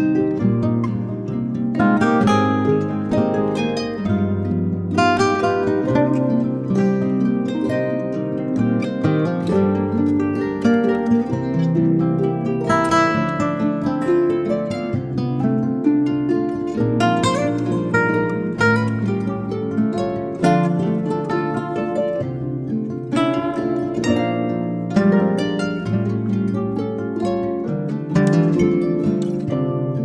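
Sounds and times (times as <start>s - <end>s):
plucked harp notes: 0.0s - 30.0s.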